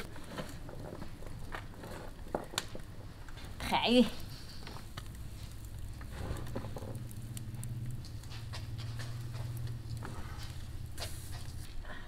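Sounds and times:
hands mixing vegetables rustling: 0:08.0 - 0:11.9.

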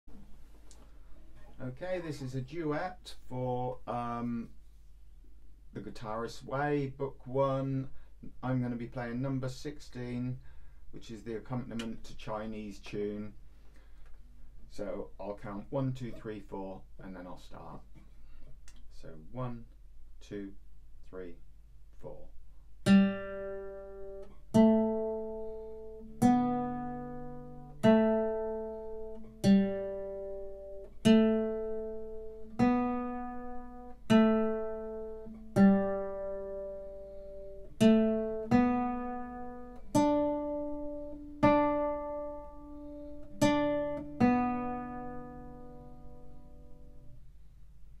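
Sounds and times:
classical guitar plucked notes: 0:22.8 - 0:47.2.

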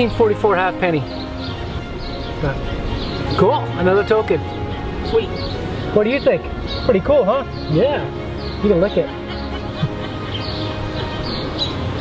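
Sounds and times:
background music: 0:00.0 - 0:12.0
bird chirps: 0:00.8 - 0:12.0.

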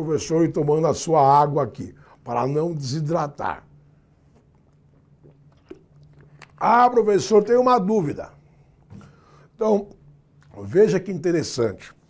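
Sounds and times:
swallowing and mouth sounds: 0:04.2 - 0:06.6.

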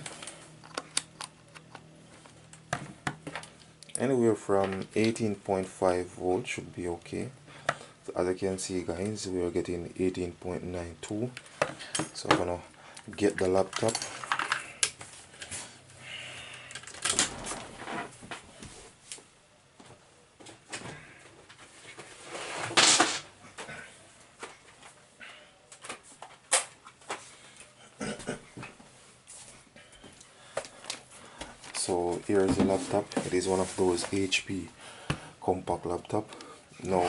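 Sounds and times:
loud rustle or scrape: 0:21.8 - 0:23.3.

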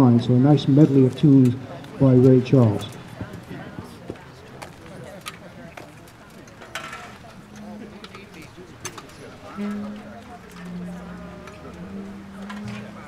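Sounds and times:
murmur of voices: 0:00.0 - 0:13.0
low held instrument note: 0:09.4 - 0:13.0.

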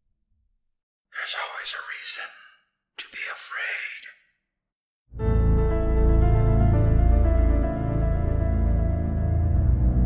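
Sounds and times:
loud whispered voice: 0:01.1 - 0:04.3.

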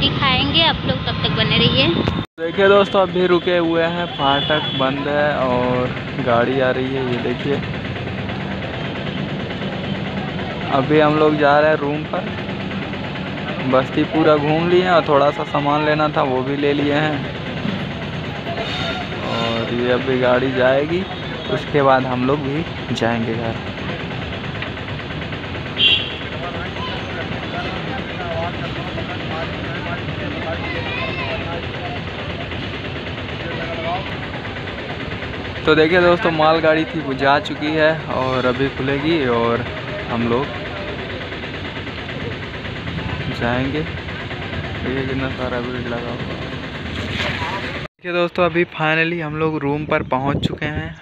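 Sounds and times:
train wheels rolling on rail: 0:00.0 - 0:47.9
motorcycle and vehicle engines idling: 0:00.0 - 0:51.0
faint voices: 0:26.3 - 0:46.3.

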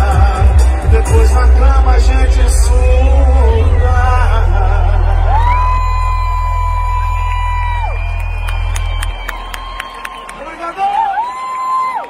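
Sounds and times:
sustained low bass note: 0:01.0 - 0:10.3
crowd cheering: 0:01.0 - 0:12.0.

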